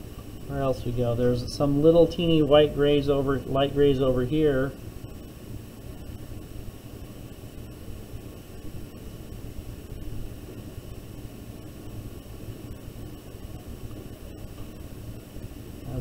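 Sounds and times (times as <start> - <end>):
background hiss: 0.0 - 16.0
low hum: 0.0 - 16.0.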